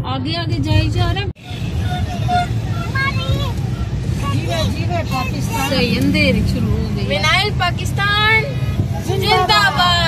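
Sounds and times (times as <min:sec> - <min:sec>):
car driving in traffic: 0:00.0 - 0:10.0.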